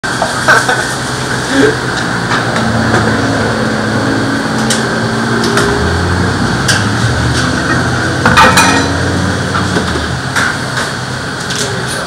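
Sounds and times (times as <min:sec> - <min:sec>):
loud room din: 0:00.0 - 0:12.0.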